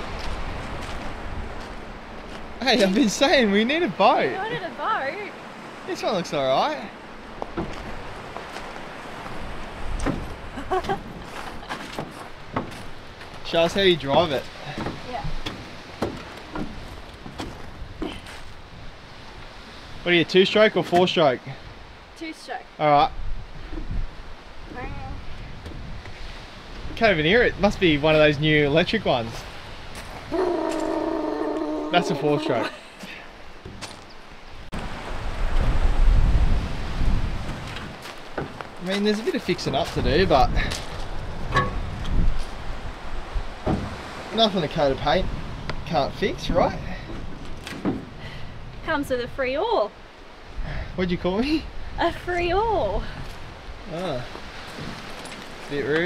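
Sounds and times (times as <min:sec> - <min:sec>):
surf: 0:00.0 - 0:56.0
wind: 0:00.0 - 0:56.0
knocks in metal boat hull: 0:41.5 - 0:42.0, 0:43.6 - 0:44.0.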